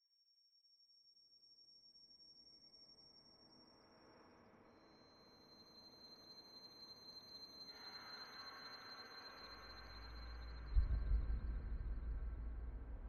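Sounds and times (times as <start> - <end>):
loud low boom: 10.6 - 13.0.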